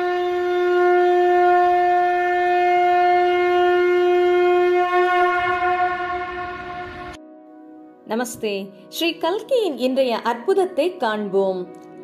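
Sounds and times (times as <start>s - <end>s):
conch shell blown: 0.0s - 7.2s.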